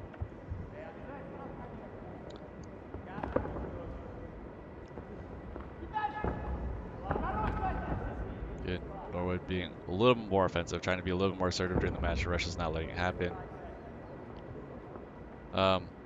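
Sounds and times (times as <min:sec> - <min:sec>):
crowd noise: 0:00.0 - 0:16.0
people shouting: 0:05.8 - 0:08.3.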